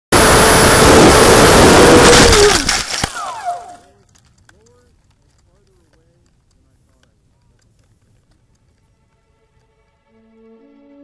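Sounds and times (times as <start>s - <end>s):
electric motor whine: 0.1s - 3.9s.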